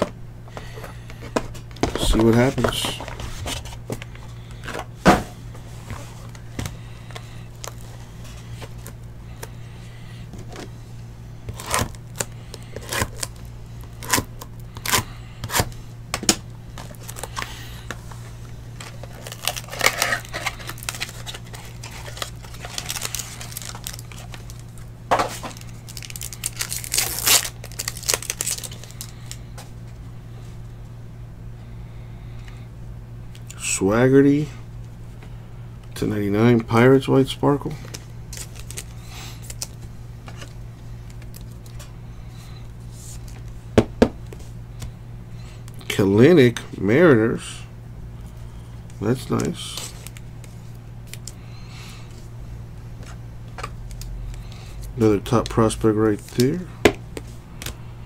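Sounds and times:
steady low hum: 0:00.0 - 0:58.0
plastic wrapper crinkling and tearing: 0:11.5 - 0:15.6, 0:16.8 - 0:18.0, 0:18.8 - 0:29.4, 0:37.8 - 0:41.8, 0:55.3 - 0:56.6.

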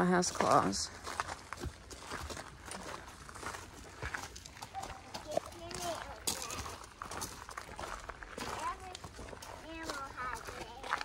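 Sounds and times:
footsteps on gravel: 0:00.0 - 0:11.0.

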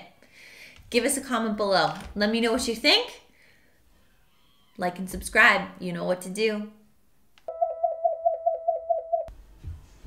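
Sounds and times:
pulsing electronic tone: 0:07.5 - 0:09.3.

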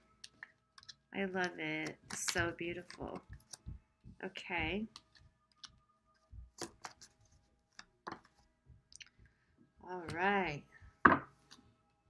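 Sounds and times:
cards shuffled and laid down: 0:00.2 - 0:08.5.

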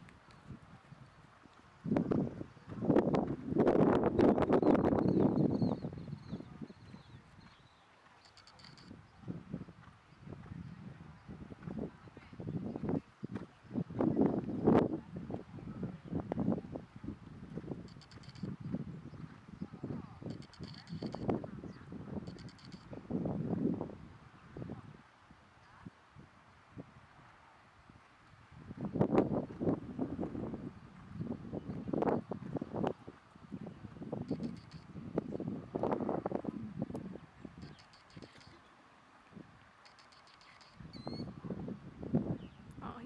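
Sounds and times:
small birds chirping: 0:04.2 - 0:09.4, 0:37.4 - 0:38.8, 0:39.8 - 0:41.4, 0:42.3 - 0:43.0.

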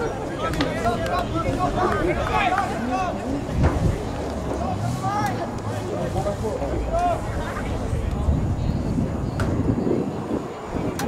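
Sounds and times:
low steady rumble: 0:03.0 - 0:10.0.

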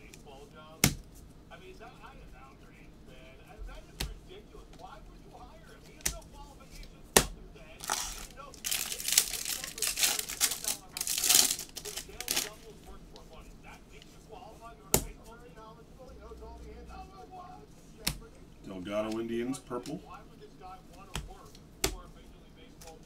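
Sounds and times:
foil wrapper tearing and crinkling: 0:07.8 - 0:12.7.

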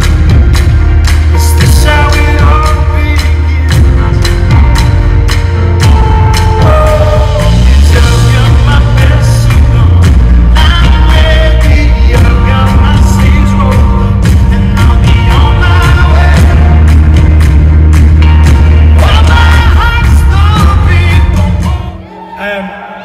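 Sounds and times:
band with bass and drums: 0:00.0 - 0:22.2
man singing into microphone: 0:01.3 - 0:04.6, 0:06.6 - 0:17.0, 0:18.9 - 0:23.0.

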